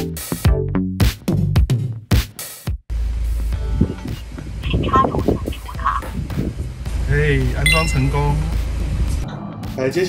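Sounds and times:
background music: 6.3s - 10.0s.

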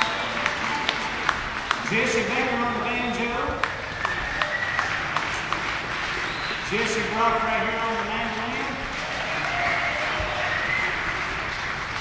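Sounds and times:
handclaps: 0.0s - 12.0s
low crowd hubbub: 0.0s - 12.0s.

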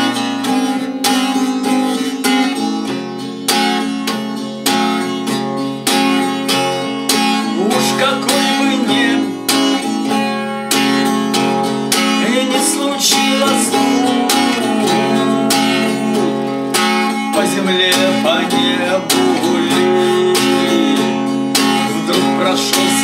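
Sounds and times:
acoustic guitar strumming chords: 0.0s - 23.0s
man singing: 7.4s - 9.9s, 11.9s - 23.0s.

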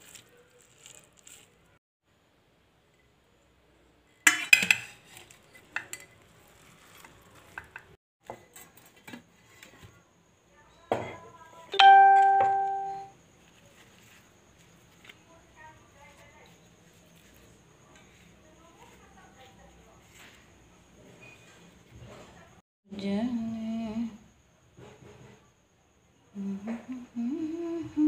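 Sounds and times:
metallic bell ding: 11.8s - 13.1s
person humming: 26.4s - 28.0s.

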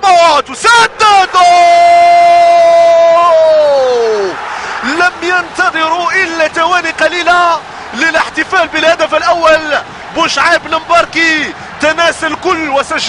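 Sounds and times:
commentator shouting: 0.0s - 13.0s
crowd noise: 0.0s - 13.0s
rapid commentary: 4.3s - 13.0s.

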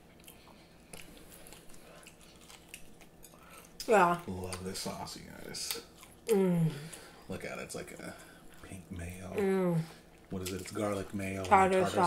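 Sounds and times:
people chewing food: 0.0s - 12.0s
person speaking: 11.4s - 12.0s.

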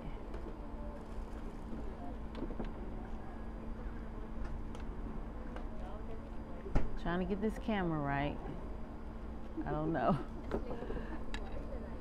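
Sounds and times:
faint hum: 0.0s - 12.0s.

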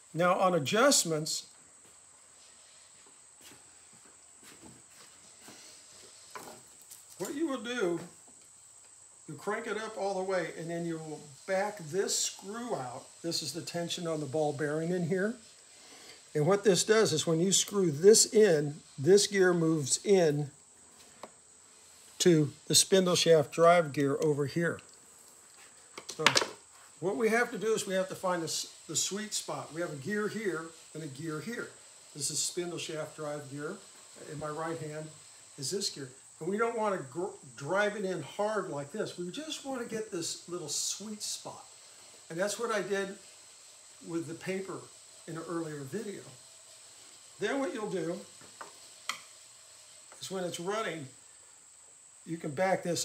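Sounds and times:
faint high-pitched whine: 0.0s - 53.0s.

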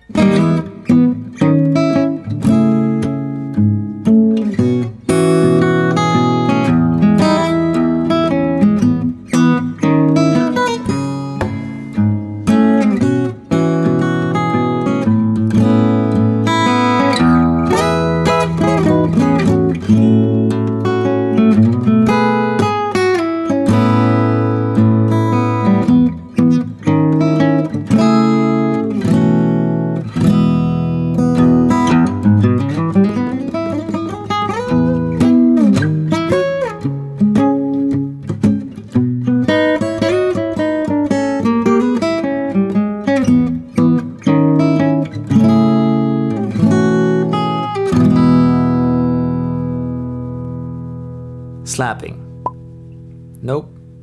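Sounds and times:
acoustic guitar plucking: 0.0s - 54.0s.

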